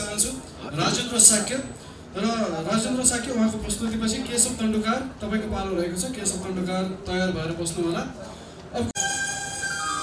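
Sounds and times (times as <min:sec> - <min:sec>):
man speaking into a microphone: 0:00.0 - 0:09.0.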